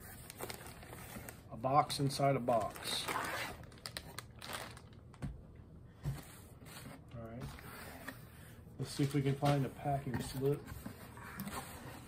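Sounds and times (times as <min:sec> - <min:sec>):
cardboard and plastic rustling: 0:00.0 - 0:05.4, 0:06.0 - 0:12.0.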